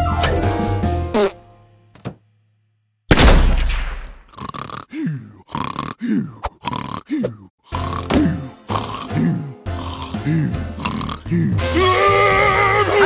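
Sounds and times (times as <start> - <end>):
cartoon snoring: 4.2 - 11.8
soft background music: 7.8 - 13.0.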